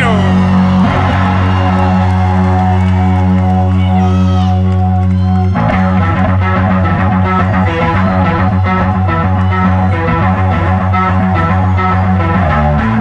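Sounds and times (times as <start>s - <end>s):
rock band playing live: 0.0s - 13.0s.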